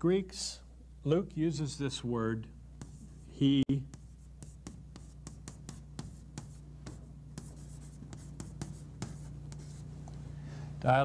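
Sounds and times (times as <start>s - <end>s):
steady low hum: 0.0s - 11.0s
chalk tapping on chalkboard: 2.8s - 10.2s.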